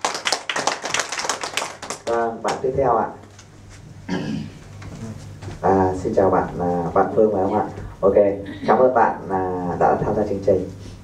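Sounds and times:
people clapping: 0.0s - 2.7s.

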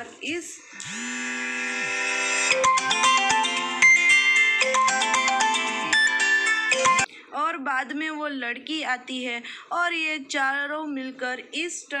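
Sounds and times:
mobile phone ringtone: 2.0s - 7.1s.

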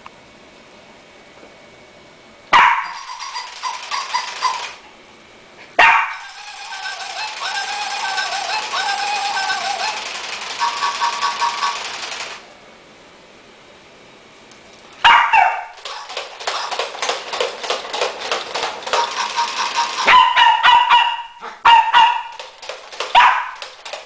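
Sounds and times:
robot toy electronic beeping: 6.3s - 12.0s.

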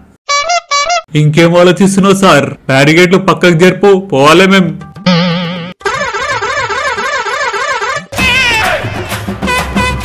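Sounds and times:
warbling siren-like horn: 5.5s - 8.2s.

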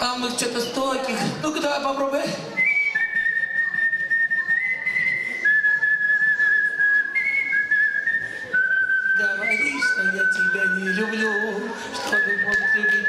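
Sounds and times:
girl whistling a melody: 2.6s - 13.0s.

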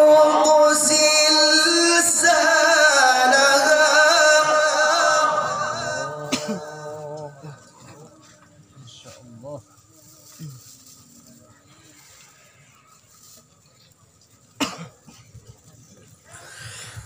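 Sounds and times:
faint background voices: 3.6s - 17.0s.

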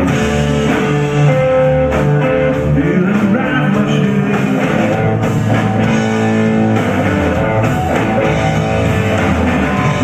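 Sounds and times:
drum kit: 0.0s - 10.0s
electric bass: 0.0s - 10.0s
electric guitar: 0.0s - 10.0s.

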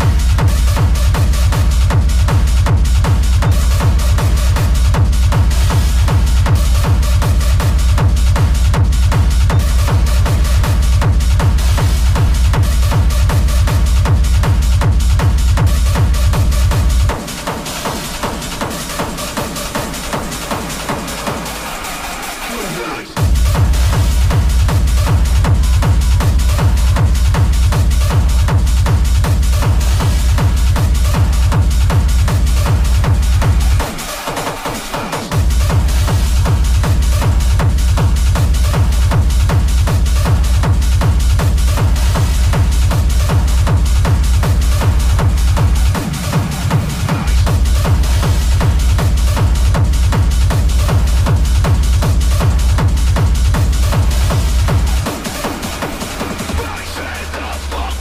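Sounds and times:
hard techno with heavy kick drum: 0.0s - 58.0s.

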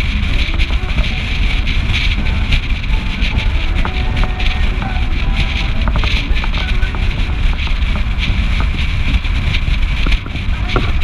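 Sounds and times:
car engine and tyre rumble: 0.0s - 11.0s
wind buffeting microphone: 0.0s - 11.0s.

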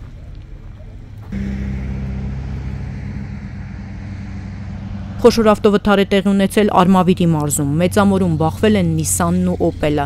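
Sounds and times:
low outdoor rumble: 0.0s - 10.0s
vehicle engine droning: 0.9s - 10.0s.

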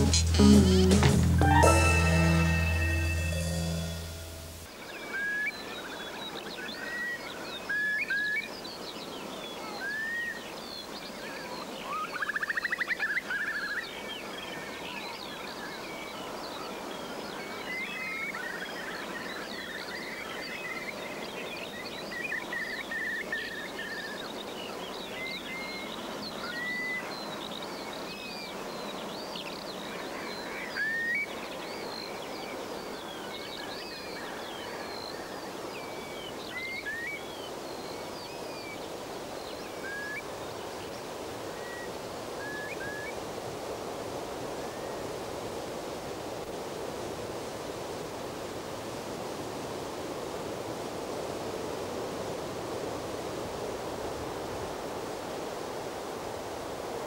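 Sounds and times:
background hiss: 0.0s - 57.0s.

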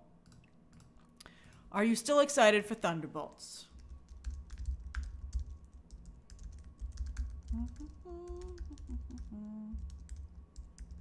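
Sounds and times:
computer keyboard typing: 3.8s - 11.0s.

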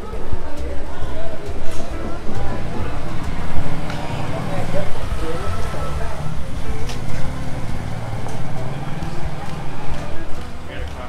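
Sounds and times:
background music: 0.0s - 11.0s
people's voices: 0.0s - 11.0s
motor vehicle running: 1.4s - 11.0s.

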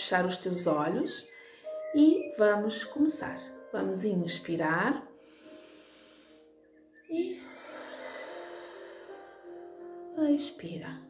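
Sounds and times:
soft background music: 0.0s - 11.0s
slow breath out through mouth: 5.2s - 6.7s, 7.4s - 9.8s.

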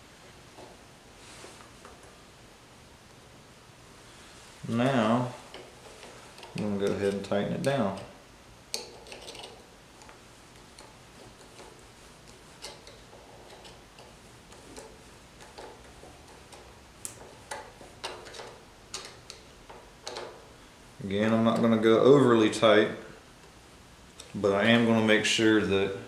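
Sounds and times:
screwdriver clicking and scraping: 8.7s - 20.3s.

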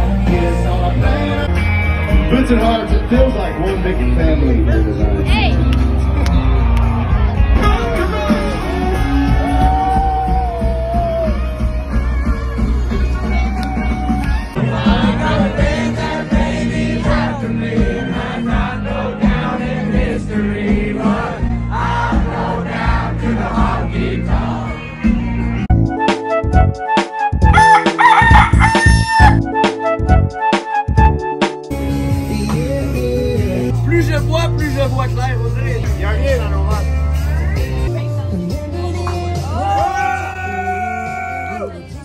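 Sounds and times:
music with steady beat: 0.0s - 40.0s
country band playing: 0.0s - 42.0s
rooster crowing: 27.5s - 29.4s.

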